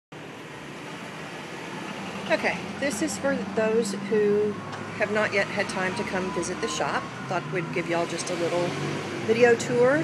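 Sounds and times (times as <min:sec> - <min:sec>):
street traffic noise: 0:00.1 - 0:10.0.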